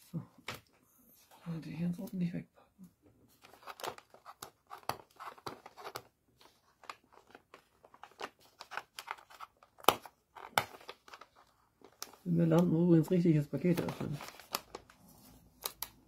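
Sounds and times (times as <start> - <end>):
wrapping paper crinkling: 3.3 - 16.0
sharp paper cracks: 3.4 - 12.7, 13.7 - 16.0.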